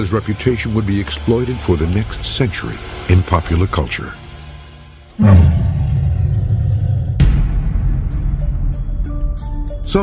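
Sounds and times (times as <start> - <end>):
deep rumbling hit: 5.2 - 8.7.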